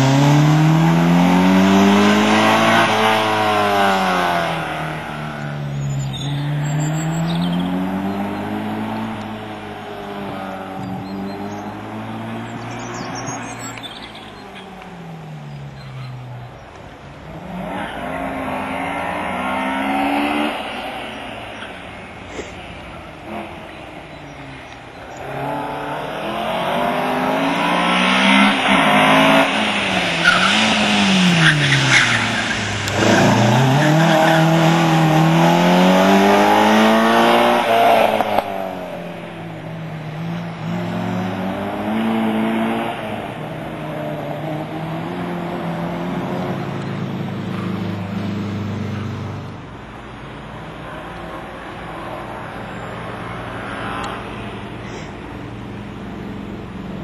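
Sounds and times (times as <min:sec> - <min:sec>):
car engine revving: 0:00.0 - 0:57.0
tyre squeal: 0:01.8 - 0:11.9, 0:12.5 - 0:14.8, 0:28.2 - 0:35.6.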